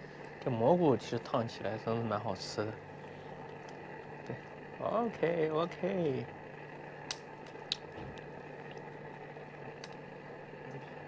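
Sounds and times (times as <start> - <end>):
gas stove burner hissing: 0.0 - 11.0.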